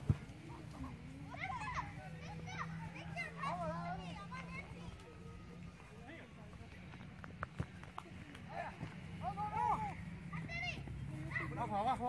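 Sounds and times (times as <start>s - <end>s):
men calling and shouting: 0.0s - 12.0s.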